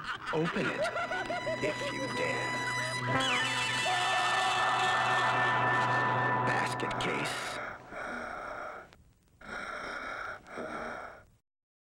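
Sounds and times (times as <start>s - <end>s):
raspy breathy gasps: 7.4s - 11.3s.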